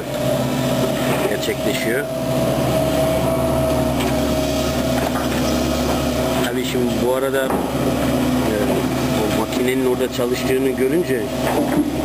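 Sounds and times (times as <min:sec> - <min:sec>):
excavator engine running: 0:00.0 - 0:12.0
high hydraulic whine: 0:00.0 - 0:12.0.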